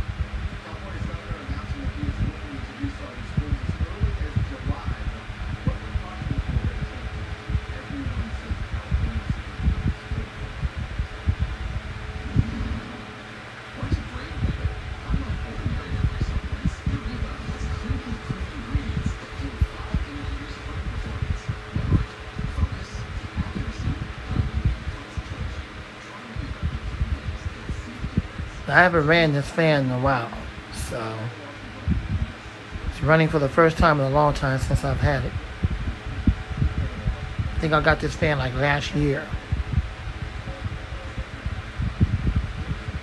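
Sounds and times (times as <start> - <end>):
wind buffeting microphone: 0.0 - 25.7, 26.3 - 29.1, 31.8 - 33.2, 33.8 - 43.0
fan air rushing: 0.0 - 43.0.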